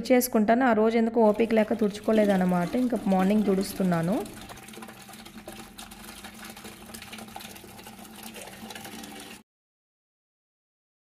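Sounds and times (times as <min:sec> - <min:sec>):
tap water pouring into plastic bucket: 0:01.2 - 0:09.4.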